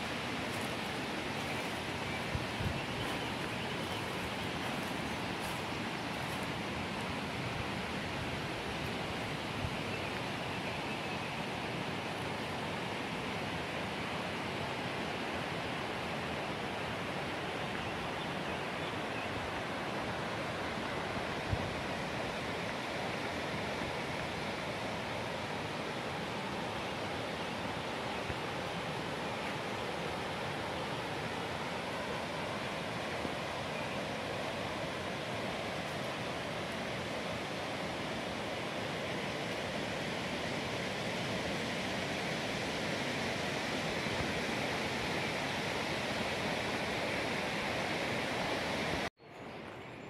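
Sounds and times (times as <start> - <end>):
river rushing over stones: 0.0 - 49.1.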